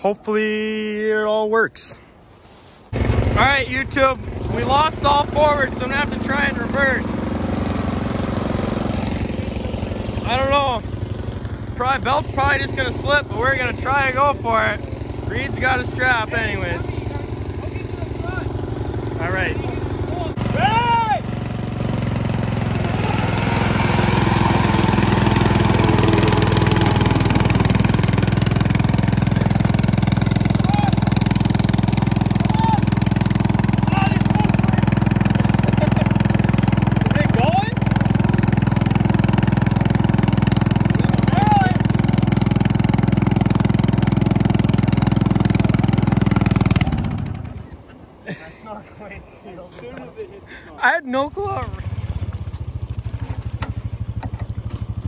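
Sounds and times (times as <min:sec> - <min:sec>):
riding mower engine running: 0:02.9 - 0:48.5, 0:50.4 - 0:55.0.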